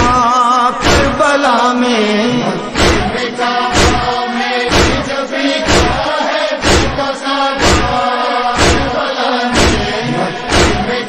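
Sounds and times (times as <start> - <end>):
rhythmic chest-beating thumps: 0.0 - 1.5, 2.1 - 11.0
backing voices chanting drone: 0.0 - 11.0
person reciting: 0.0 - 11.0.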